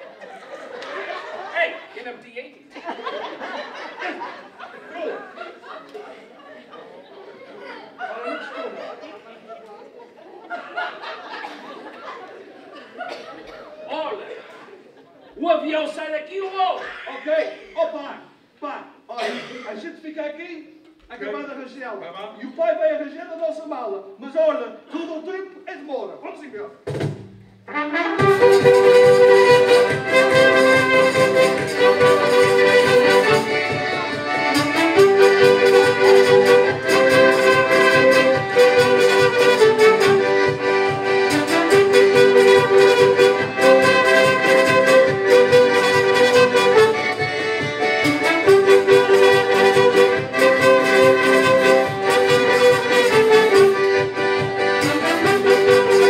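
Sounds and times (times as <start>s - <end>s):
saxophone and brass melody: 27.6s - 56.0s.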